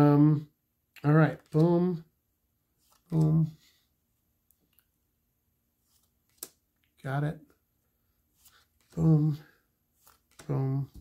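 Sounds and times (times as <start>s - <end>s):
trading card snap: 6.0s - 6.6s.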